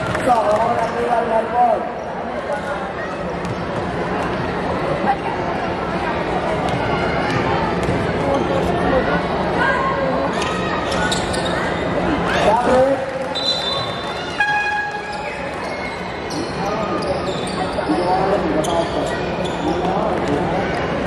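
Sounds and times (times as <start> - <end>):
crowd chattering and calling out: 0.0 - 21.0
short horn-like tone: 14.4 - 15.2.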